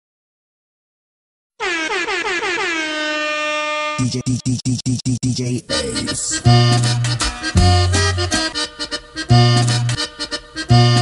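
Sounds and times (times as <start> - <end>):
air horn sound effect: 1.6 - 4.2.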